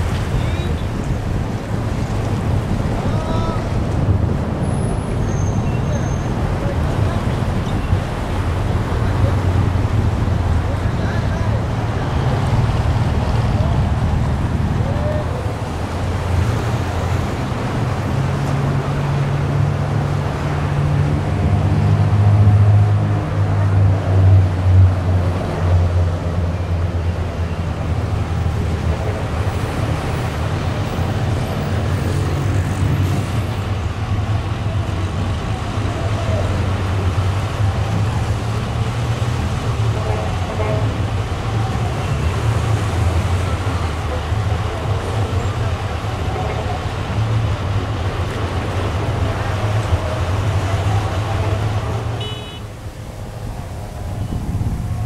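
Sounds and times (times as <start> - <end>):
faint voices: 0.0 - 4.4, 5.6 - 18.6, 23.5 - 55.0.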